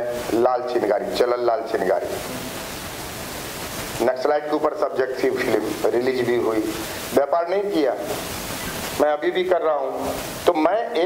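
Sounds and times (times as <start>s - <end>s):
man speaking: 0.0s - 2.2s, 4.0s - 8.2s, 9.0s - 11.0s
steady hiss: 0.0s - 11.0s.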